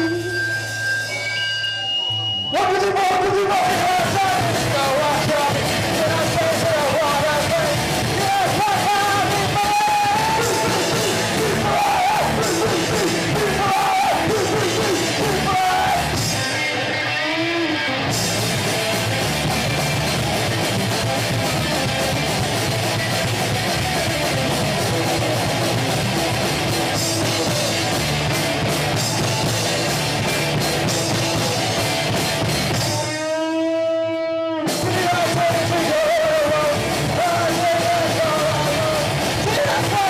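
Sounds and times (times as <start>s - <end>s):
punk rock band playing live: 0.0s - 40.0s.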